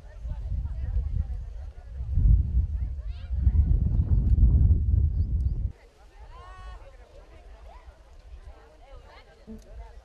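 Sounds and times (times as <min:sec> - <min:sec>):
wind buffeting microphone: 0:00.0 - 0:05.8.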